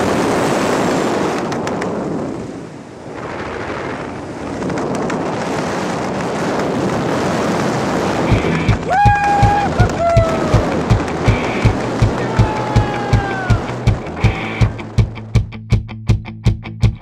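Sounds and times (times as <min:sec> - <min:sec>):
wind buffeting microphone: 0:00.0 - 0:15.5.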